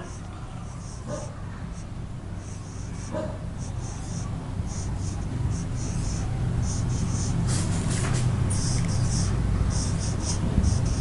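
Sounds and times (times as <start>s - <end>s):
steady low hum: 0.0s - 11.0s
marker pen writing on whiteboard: 2.4s - 11.0s.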